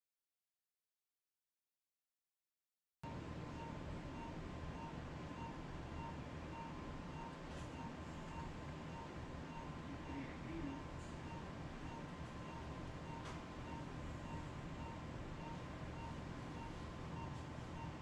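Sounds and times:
equipment hum: 3.0 - 18.0
short electronic beeps: 3.6 - 18.0.

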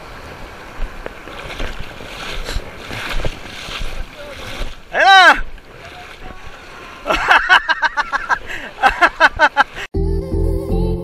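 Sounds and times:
sea water washing: 0.0 - 9.8
person shouting: 5.0 - 5.4.

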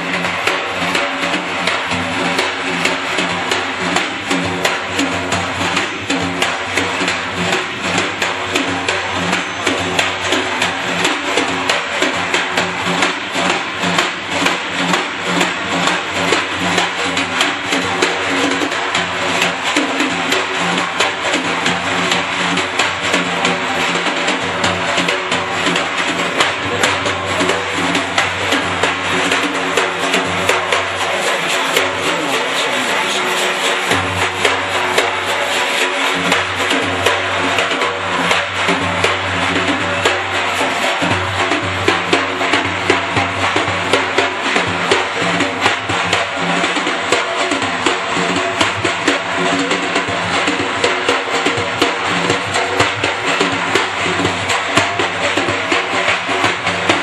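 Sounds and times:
frame drum strokes: 0.0 - 57.0.

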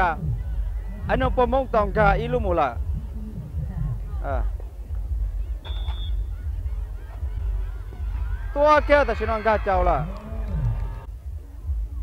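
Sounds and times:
wind buffeting microphone: 0.0 - 8.8
distant crowd voices: 0.0 - 12.0.

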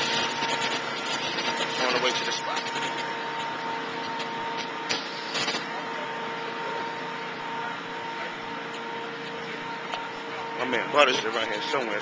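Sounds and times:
constant hum: 0.0 - 12.0.

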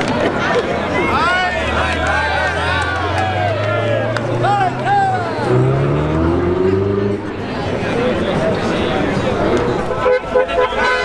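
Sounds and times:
spectators shouting: 0.0 - 7.1
sports car accelerating hard: 1.5 - 9.9.

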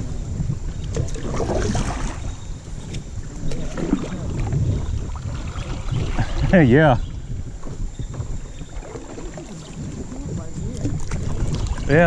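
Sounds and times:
paddle strokes in water: 0.0 - 12.0
wind rumbling on microphone: 0.0 - 12.0.

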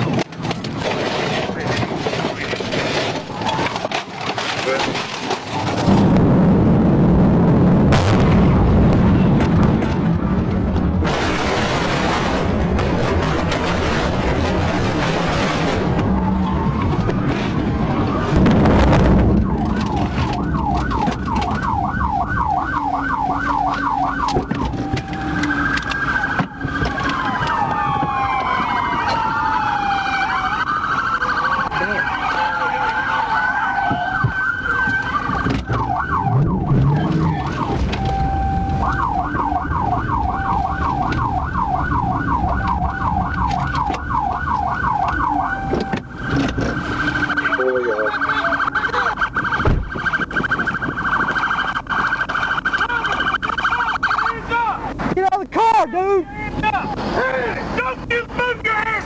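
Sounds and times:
wailing sirens: 0.0 - 55.1
car engine and tyres rumble: 0.0 - 59.0
police siren yelp: 13.1 - 54.8.

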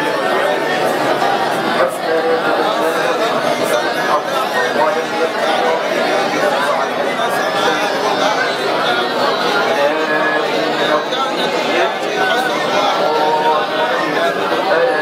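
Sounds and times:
men reciting aloud overlapping: 0.0 - 15.0.

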